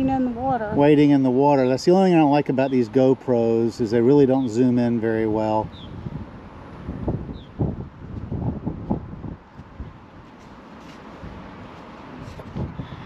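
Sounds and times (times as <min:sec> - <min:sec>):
wind buffeting microphone: 0:00.0 - 0:13.0
bird chirp: 0:05.7 - 0:06.0, 0:07.3 - 0:07.6.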